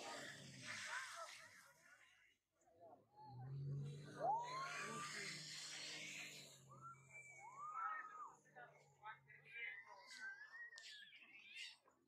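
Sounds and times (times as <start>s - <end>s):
people shrieking and whooping: 4.1s - 5.5s, 7.4s - 8.1s.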